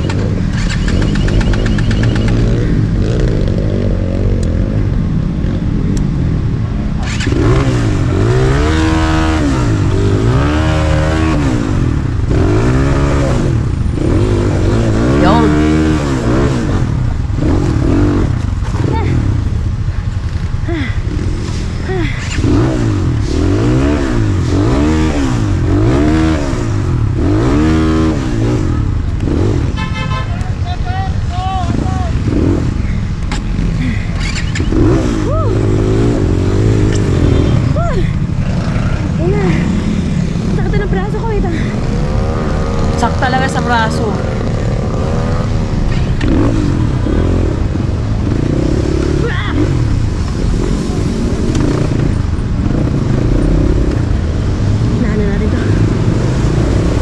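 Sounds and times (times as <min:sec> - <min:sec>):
dirt bike engine revving: 0:07.0 - 0:30.2, 0:31.6 - 0:57.0.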